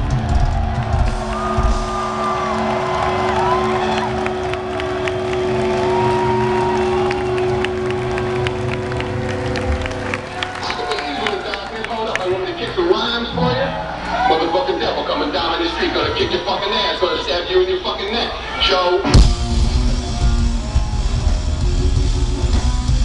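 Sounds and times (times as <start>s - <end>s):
crowd cheering whistling and clapping: 0.0s - 13.1s
heavy metal band chord: 19.0s - 23.0s.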